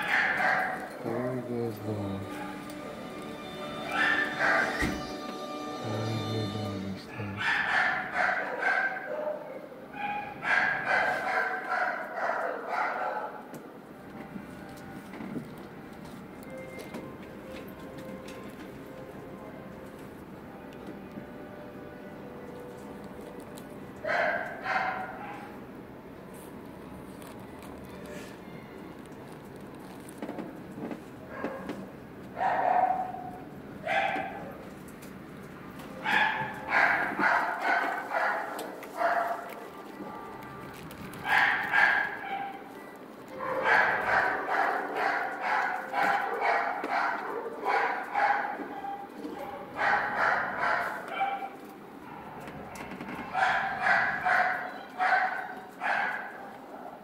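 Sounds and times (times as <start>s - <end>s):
dog barking: 0.0s - 1.0s, 2.3s - 2.7s, 3.8s - 5.0s, 7.1s - 13.5s, 24.0s - 25.6s, 31.3s - 31.8s, 32.4s - 34.6s, 36.0s - 40.4s, 41.2s - 42.7s, 43.4s - 52.5s, 53.2s - 57.0s.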